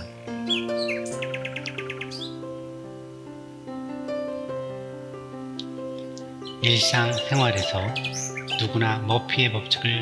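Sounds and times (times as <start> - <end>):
bird chirps and trills: 0.0 - 2.8, 5.6 - 10.0
sustained instrumental music: 0.0 - 10.0.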